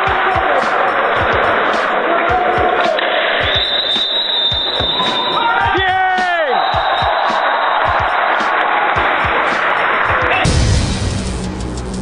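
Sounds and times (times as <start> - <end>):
handball game noise: 0.0 - 10.5
background music: 0.0 - 12.0.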